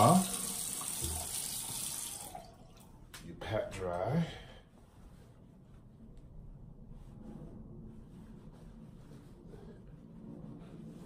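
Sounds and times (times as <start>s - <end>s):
faucet running into sink: 0.0s - 2.9s.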